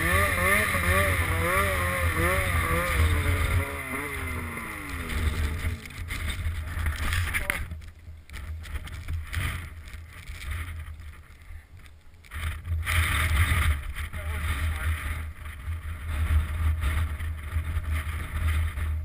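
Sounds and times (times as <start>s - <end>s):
snowmobile engine running: 0.0s - 7.7s, 12.3s - 19.0s
wind buffeting microphone: 0.0s - 19.0s.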